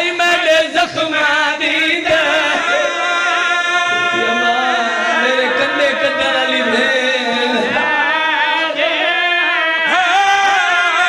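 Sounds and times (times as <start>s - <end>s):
man chanting over loudspeaker: 0.0s - 11.0s.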